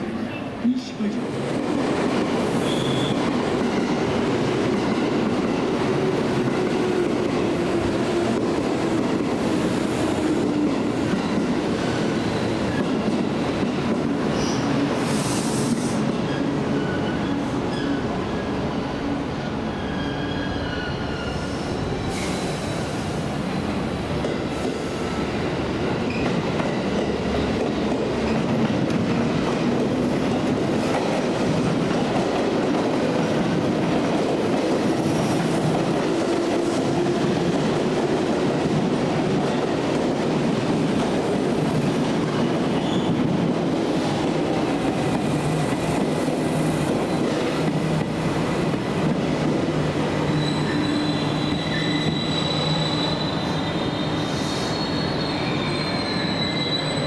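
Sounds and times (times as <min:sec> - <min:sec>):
train wheels squealing on rail joints: 0:02.4 - 0:03.6, 0:14.3 - 0:18.7, 0:19.4 - 0:25.4, 0:26.0 - 0:27.7, 0:42.3 - 0:43.4, 0:44.9 - 0:48.1, 0:50.1 - 0:57.0.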